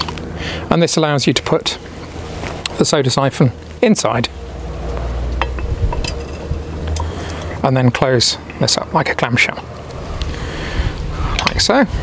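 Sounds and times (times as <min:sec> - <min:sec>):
low rumble: 0:03.6 - 0:12.0
glass and metal clinks: 0:05.4 - 0:06.5.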